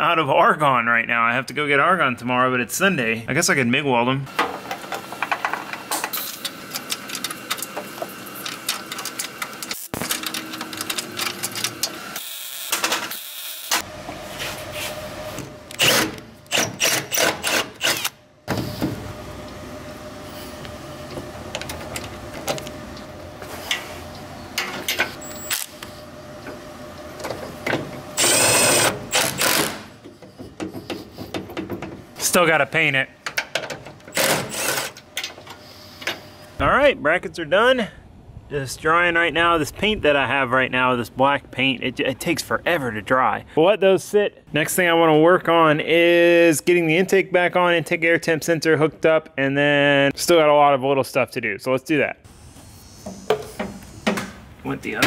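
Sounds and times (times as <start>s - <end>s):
cordless drill-driver running: 28.2s - 29.8s, 34.2s - 34.9s.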